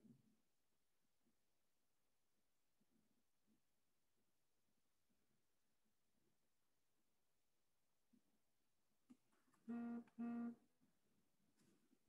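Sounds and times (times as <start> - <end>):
person humming low: 9.7 - 10.6.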